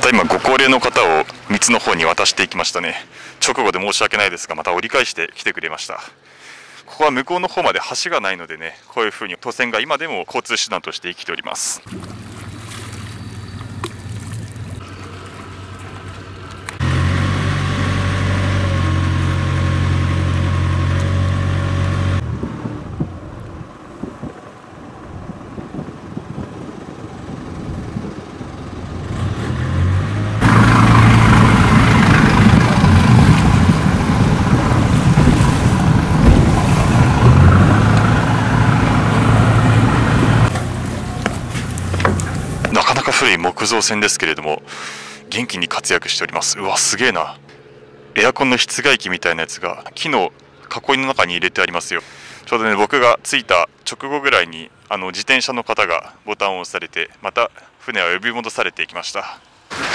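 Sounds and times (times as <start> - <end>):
wind: 0.0 - 59.9
water rushing: 11.8 - 16.9, 30.4 - 43.2
boat engine running: 11.9 - 29.3, 30.3 - 50.7.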